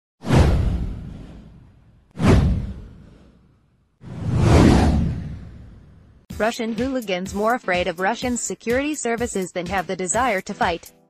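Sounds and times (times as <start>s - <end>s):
deep whoosh sweeping down: 0.2s - 3.4s, 4.0s - 6.2s.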